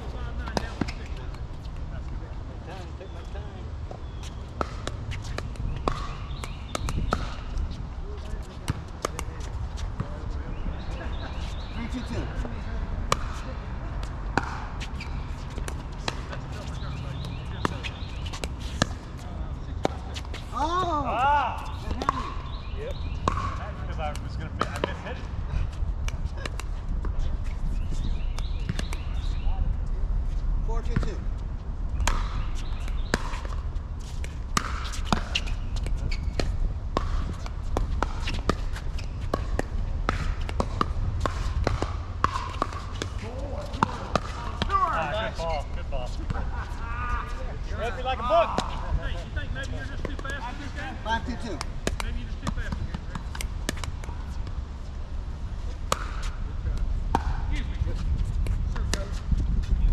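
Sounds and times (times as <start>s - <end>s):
paddles hitting plastic ball: 51.5s - 54.6s.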